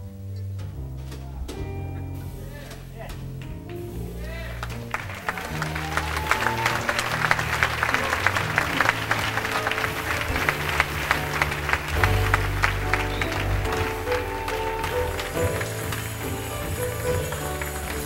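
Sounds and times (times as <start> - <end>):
upright double bass: 0.0 - 18.0
people clapping: 3.4 - 18.0.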